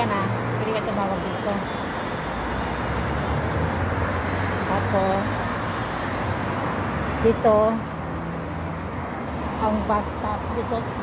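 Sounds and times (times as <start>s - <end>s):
passing cars rumbling: 0.0s - 11.0s.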